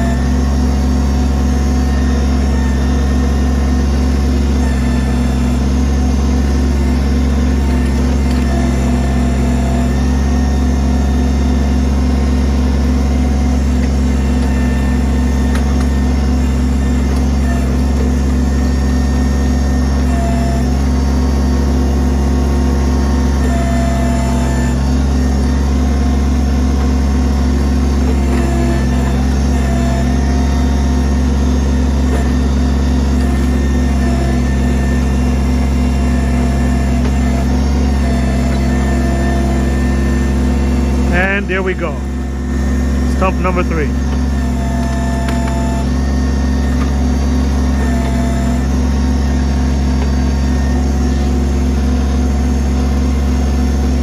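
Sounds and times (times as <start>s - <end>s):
diesel tractor engine running: 0.0s - 54.0s
hydraulic backhoe working: 0.0s - 54.0s.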